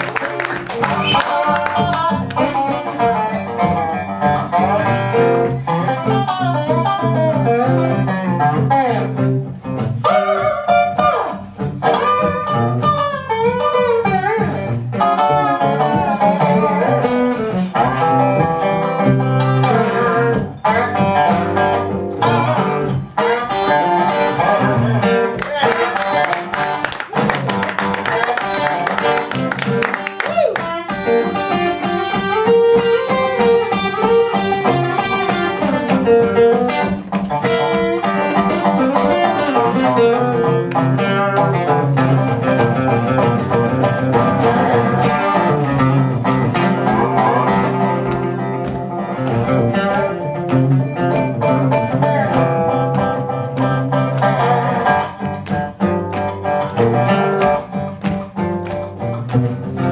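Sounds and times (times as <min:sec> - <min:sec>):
acoustic guitar: 0:00.0 - 0:59.9
dobro playing: 0:00.0 - 0:59.9.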